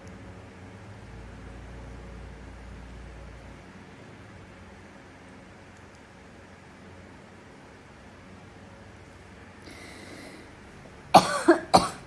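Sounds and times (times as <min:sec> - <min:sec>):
person coughing: 0:11.2 - 0:12.0.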